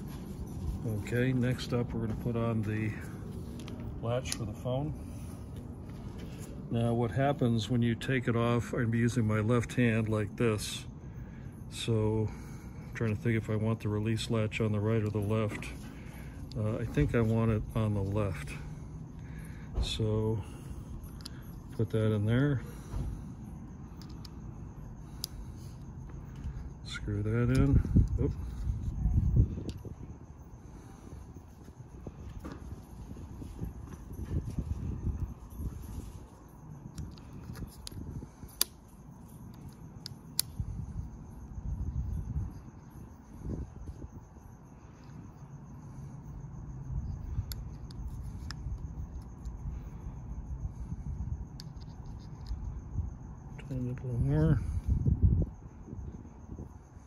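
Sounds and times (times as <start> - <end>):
sharp light clicks: 36.9 - 41.0.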